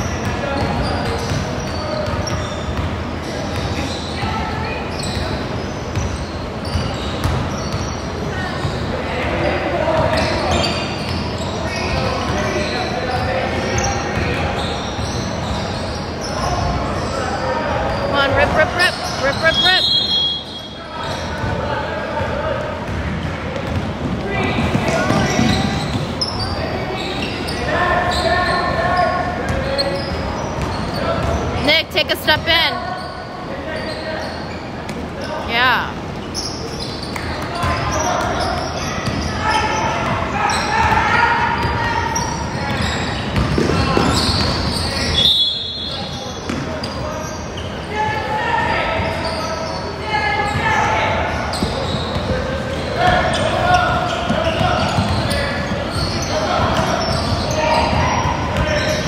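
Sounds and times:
shoe squeaks: 0.0s - 22.2s, 24.4s - 59.0s
players' voices: 0.0s - 59.0s
basketballs bouncing on hardwood: 0.2s - 3.0s, 5.9s - 7.9s, 22.9s - 26.2s, 42.7s - 44.8s, 54.2s - 59.0s.

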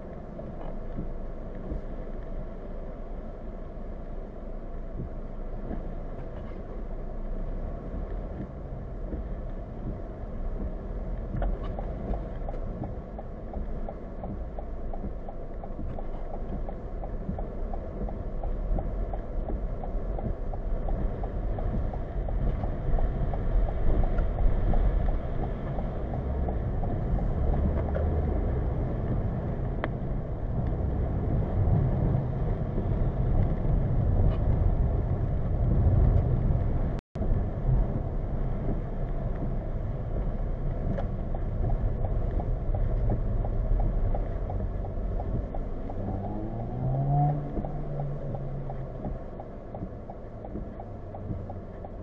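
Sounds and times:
tyre and engine rumble: 0.0s - 52.0s.

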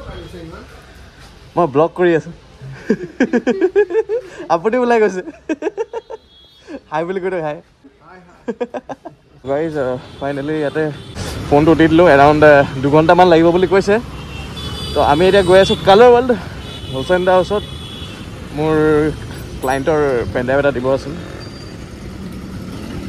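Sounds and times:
street traffic: 0.0s - 23.0s.

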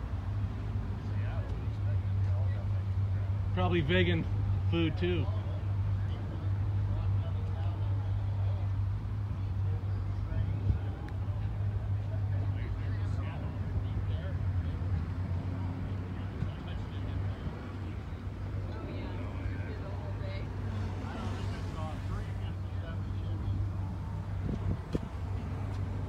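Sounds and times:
vehicle engine idling: 0.0s - 26.0s.

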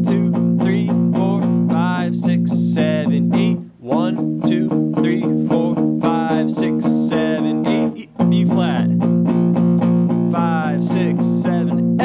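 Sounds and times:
electric guitar strumming power chords: 0.0s - 12.0s.

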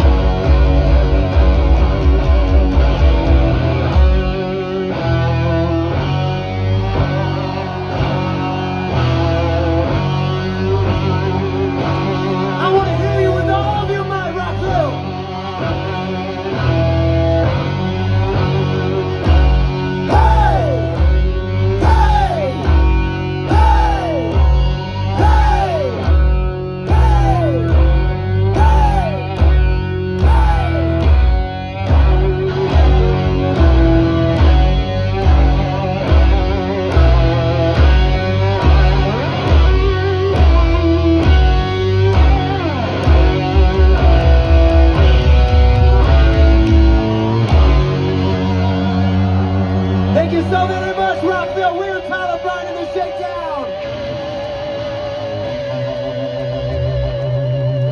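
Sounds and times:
bass guitar: 0.0s - 57.9s
drums: 0.0s - 57.9s
electric guitars: 0.0s - 57.9s.

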